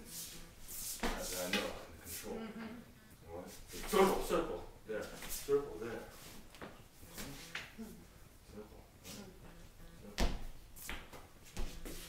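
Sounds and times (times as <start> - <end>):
murmured voice: 7.2 - 10.2.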